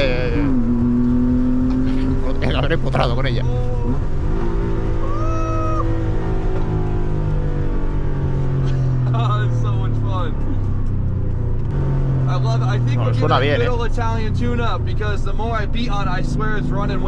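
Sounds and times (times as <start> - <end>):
car engine running in cabin: 0.0 - 17.0.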